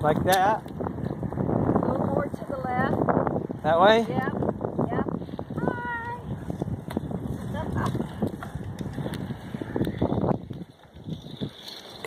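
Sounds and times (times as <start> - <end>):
bicycle clicks and rattles: 0.0 - 1.6, 6.3 - 12.0
wind on microphone: 0.0 - 12.0.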